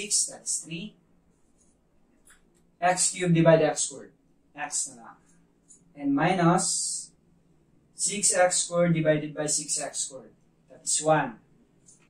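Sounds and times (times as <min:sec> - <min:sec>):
person speaking: 0:00.0 - 0:01.0, 0:02.8 - 0:07.2, 0:08.0 - 0:11.4.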